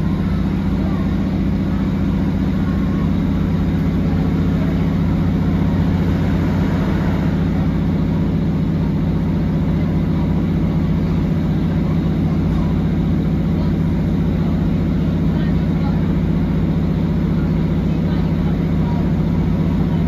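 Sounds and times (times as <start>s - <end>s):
train diesel engine drone: 0.0s - 20.0s.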